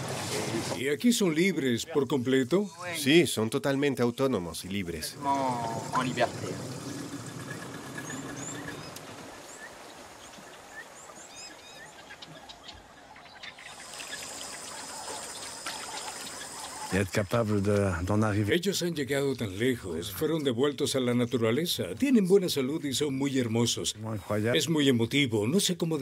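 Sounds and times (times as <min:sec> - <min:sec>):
bird chirps: 0:05.7 - 0:17.0.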